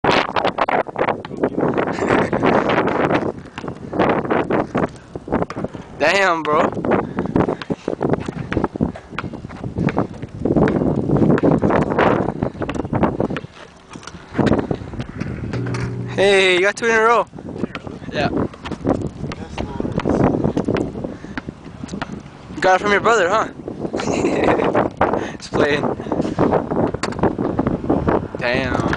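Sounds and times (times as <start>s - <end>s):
wind buffeting microphone: 0.0s - 28.9s
basketball bouncing on asphalt: 5.4s - 5.8s, 7.5s - 13.6s, 18.6s - 22.4s.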